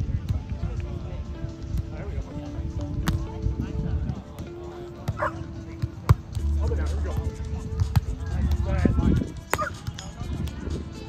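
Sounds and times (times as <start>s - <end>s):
background music: 0.0s - 11.0s
forearm slapping volleyball: 3.0s - 3.3s, 7.1s - 8.8s
dog barking: 5.2s - 5.4s.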